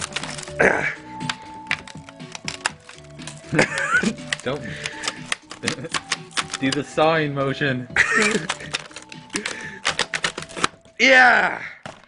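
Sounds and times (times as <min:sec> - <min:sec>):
blade cracking monitor casing: 0:00.0 - 0:00.6, 0:01.2 - 0:06.8, 0:08.1 - 0:10.8
background music: 0:00.0 - 0:12.0.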